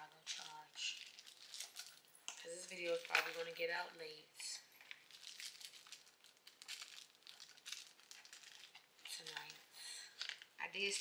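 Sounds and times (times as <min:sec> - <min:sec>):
packaging crinkling and rustling: 0:00.2 - 0:03.6, 0:04.7 - 0:11.0.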